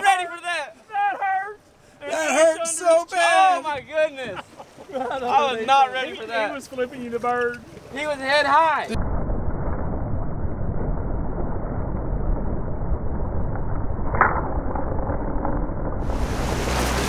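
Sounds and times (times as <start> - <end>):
boat motor rumble: 16.0 - 17.0
rushing water: 16.0 - 17.0.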